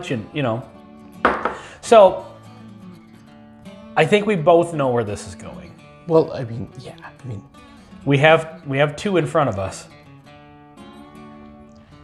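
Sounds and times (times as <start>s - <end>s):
soft background music: 0.0s - 12.0s
glass knocking on bar top: 1.2s - 1.6s.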